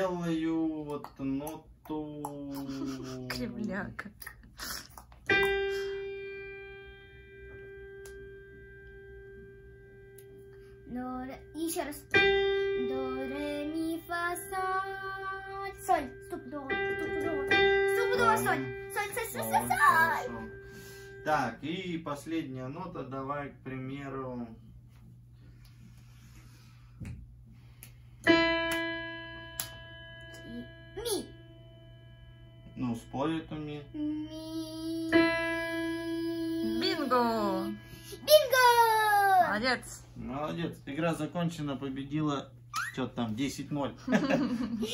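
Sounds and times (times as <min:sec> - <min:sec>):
digital piano note ringing: 0:05.3 - 0:24.2, 0:28.3 - 0:42.4.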